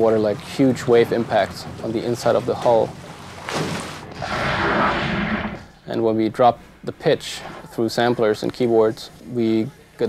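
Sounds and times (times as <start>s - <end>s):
blast sound effect: 4.1s - 5.7s.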